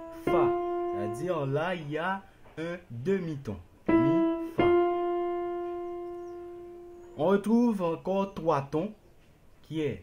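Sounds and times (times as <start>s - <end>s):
keyboard holding single note: 0.0s - 2.0s, 3.9s - 7.4s.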